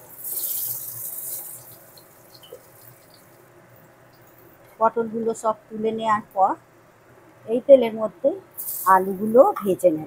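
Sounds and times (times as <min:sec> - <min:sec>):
potatoes sizzling in hot oil: 0:00.0 - 0:03.5, 0:08.6 - 0:09.6.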